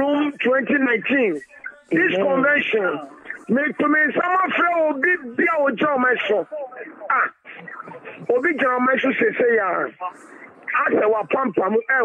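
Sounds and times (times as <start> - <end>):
person talking over phone: 0.0 - 12.0.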